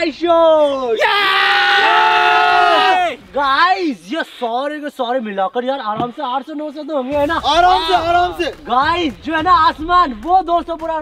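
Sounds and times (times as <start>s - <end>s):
young men cheering: 0.6s - 3.2s.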